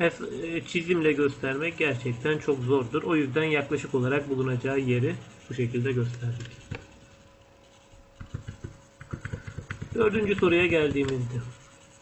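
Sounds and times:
mouse scroll wheel clicking: 8.2s - 11.2s.

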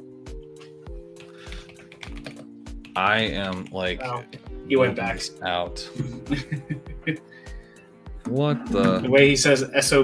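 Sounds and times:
background music with steady beat: 0.0s - 10.0s
computer keyboard typing: 1.2s - 3.8s.

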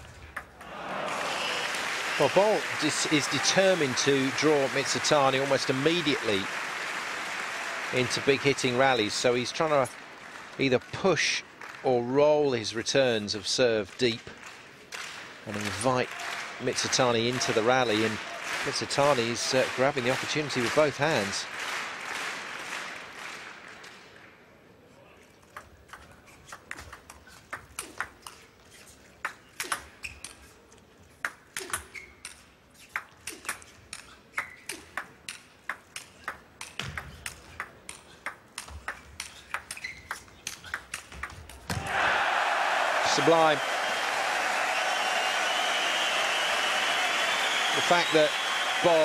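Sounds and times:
crowd cheering and applause: 0.6s - 12.0s, 15.5s - 23.8s, 41.7s - 49.0s.

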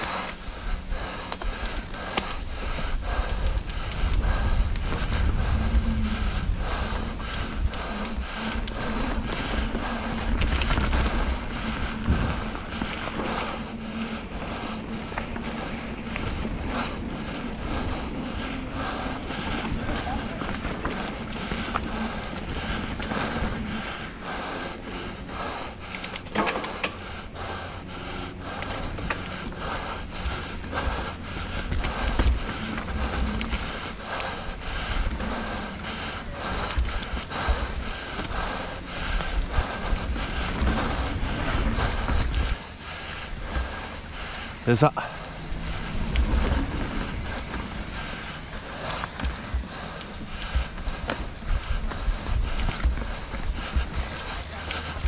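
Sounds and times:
bike tyre noise on dirt: 0.0s - 55.0s.

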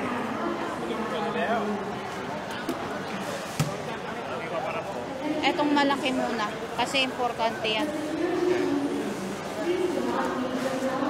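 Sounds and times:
voices echoing in large hall: 0.0s - 11.0s.

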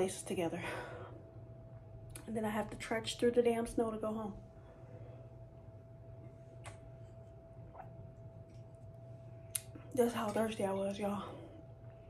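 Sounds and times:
steady low hum: 0.0s - 12.0s
person gulping a drink: 7.7s - 8.7s.

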